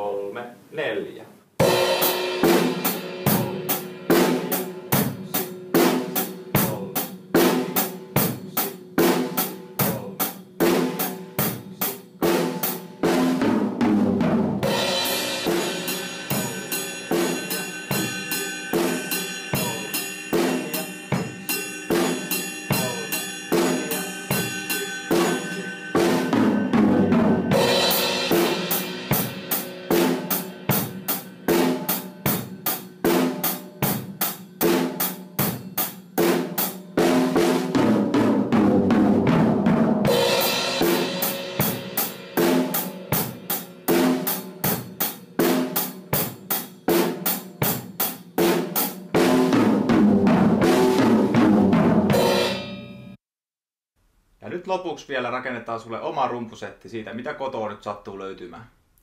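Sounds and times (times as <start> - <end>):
crash cymbal hits: 1.6 - 6.4, 14.6 - 32.9, 40.1 - 44.6, 52.1 - 53.2
drum kit beat: 1.6 - 53.2.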